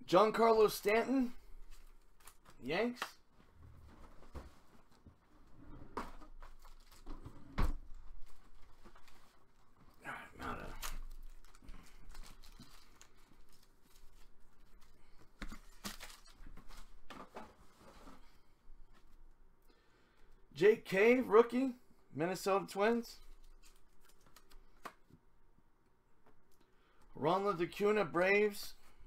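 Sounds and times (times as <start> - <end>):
card packs tearing and crinkling: 6.4 - 7.1, 10.4 - 14.3, 15.5 - 16.8.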